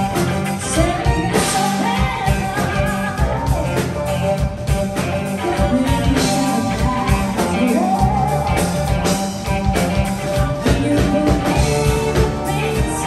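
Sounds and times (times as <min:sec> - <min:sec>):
live rock band playing: 0:00.0 - 0:13.0
woman singing: 0:00.4 - 0:04.0, 0:05.3 - 0:09.2, 0:10.4 - 0:13.0.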